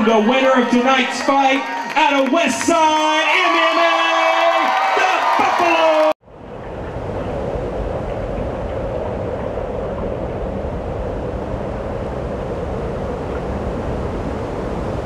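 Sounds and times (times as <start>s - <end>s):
steady rumbling noise: 6.2s - 15.0s.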